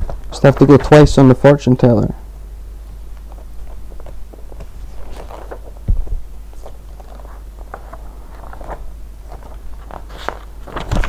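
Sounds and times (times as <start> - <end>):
steady low hum: 0.0 - 11.0
paper crinkling: 3.2 - 11.0.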